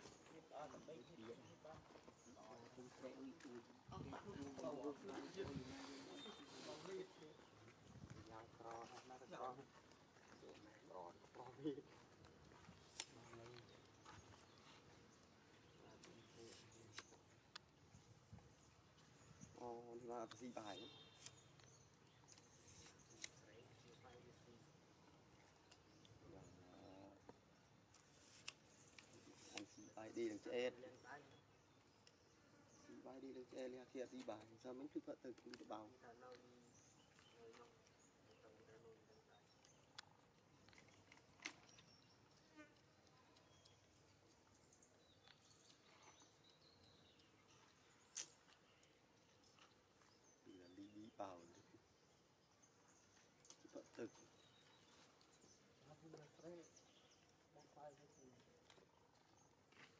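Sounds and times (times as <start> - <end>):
faint outdoor ambience: 0.0 - 59.9.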